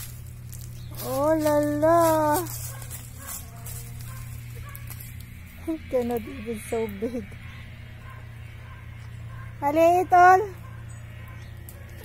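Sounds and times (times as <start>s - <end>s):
steady low hum: 0.0s - 12.0s
woman speaking: 1.0s - 2.6s, 5.6s - 7.3s, 9.6s - 10.6s.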